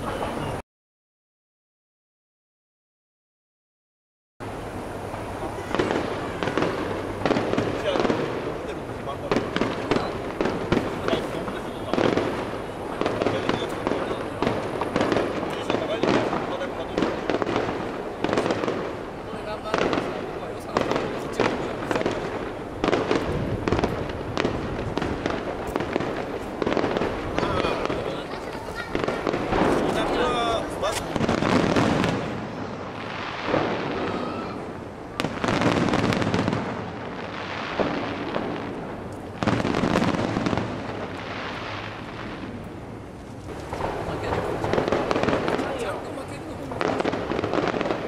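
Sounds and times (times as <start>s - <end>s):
people talking: 0.0s - 0.6s, 5.2s - 6.8s, 7.6s - 14.7s, 15.4s - 17.2s, 18.2s - 22.3s, 27.3s - 31.4s, 33.9s - 34.7s, 43.8s - 47.0s
firework shells bursting: 5.0s - 48.0s.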